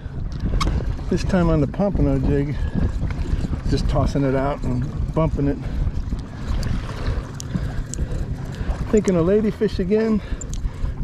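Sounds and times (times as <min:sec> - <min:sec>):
water lapping against a hull: 0:00.0 - 0:11.0
wind buffeting microphone: 0:00.0 - 0:11.0
light ticks: 0:07.3 - 0:09.2, 0:10.4 - 0:10.7.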